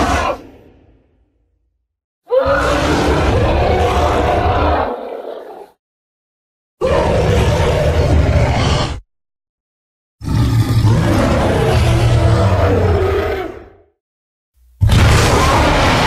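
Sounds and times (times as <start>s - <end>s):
deep dinosaur roar: 2.3s - 5.8s, 6.8s - 9.0s, 10.2s - 13.9s.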